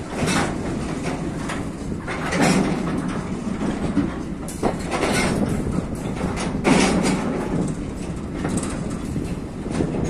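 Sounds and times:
train wheels clattering over rail joints: 0.0 - 10.0.

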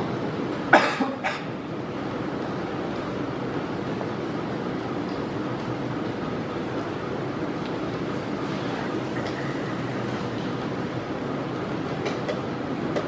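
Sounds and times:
low background rumble of hall: 0.0 - 13.0.

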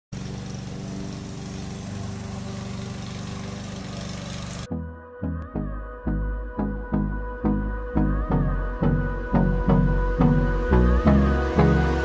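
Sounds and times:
small engine running: 0.0 - 4.7.

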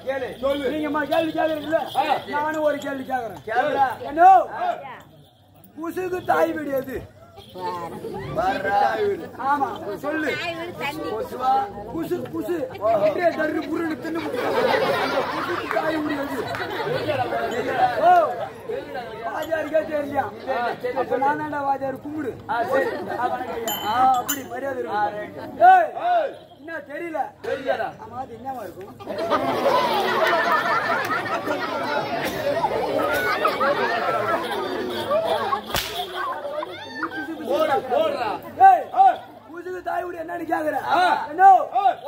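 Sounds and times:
crowd chatter: 0.0 - 42.0
people talking: 0.0 - 42.0
rope whip crack: 35.6 - 36.3.

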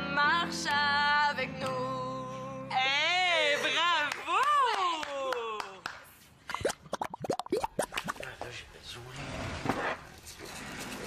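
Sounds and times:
falling bloops with clicks: 6.5 - 8.3.

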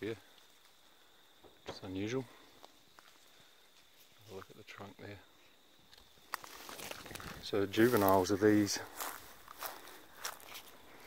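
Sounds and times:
soft footsteps: 6.0 - 11.0.

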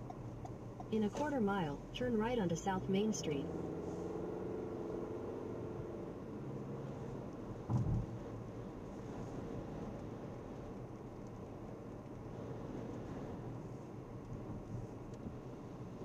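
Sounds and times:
car tyres on wet road: 0.0 - 16.0
short thump: 7.7 - 8.1.

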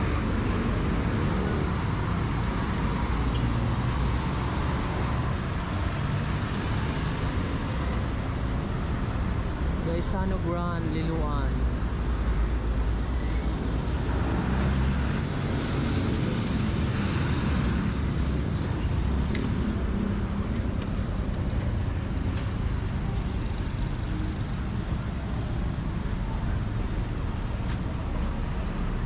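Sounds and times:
street traffic engines: 0.0 - 29.0.

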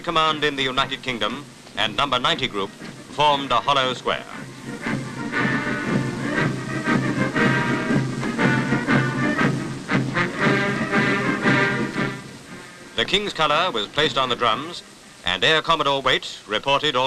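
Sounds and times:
military band playing a march: 2.7 - 14.3.

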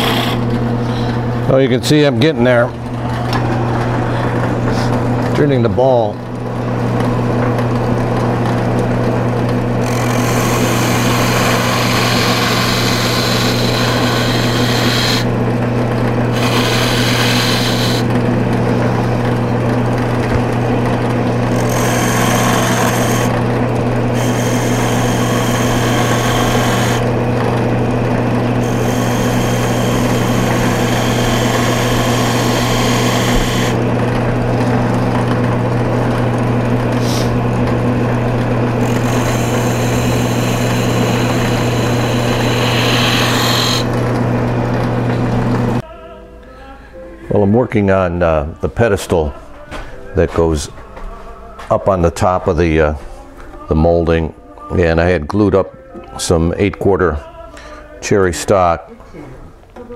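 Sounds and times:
wood lathe motor hum: 0.0 - 45.8
chisel cutting wood hiss: 10.2 - 15.3, 16.4 - 18.1, 28.7 - 33.8, 39.0 - 43.9.

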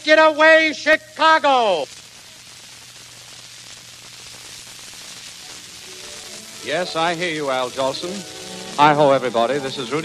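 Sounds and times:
radio hiss and static: 0.0 - 10.0.

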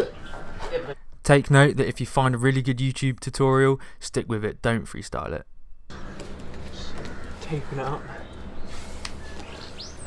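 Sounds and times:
bird chirping: 0.0 - 1.0, 5.6 - 10.0.

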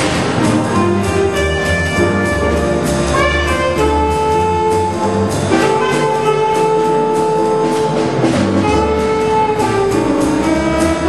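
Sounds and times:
bass: 0.0 - 11.0
drums on cymbals: 0.0 - 11.0
piano: 0.0 - 11.0
saxophone holding long notes: 0.8 - 11.0.

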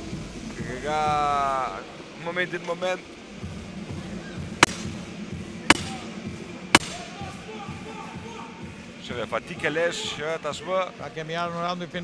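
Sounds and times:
sharp knocks: 4.6 - 5.0, 5.7 - 6.0, 6.7 - 7.0.

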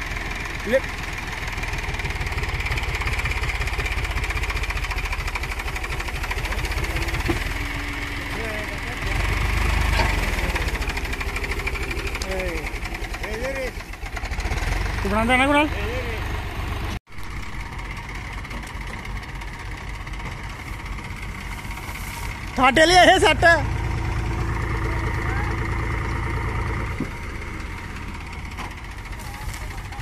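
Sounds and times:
tractor diesel engine under load: 0.0 - 30.0.

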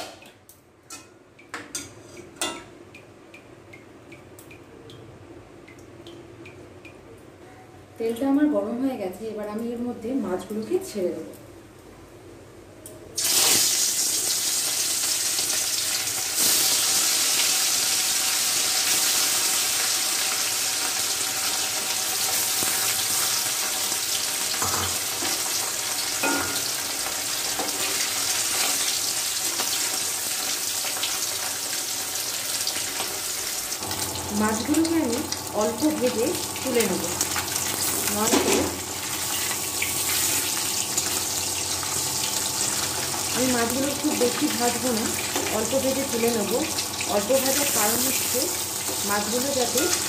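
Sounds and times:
fish sizzling in hot oil: 13.2 - 50.0.

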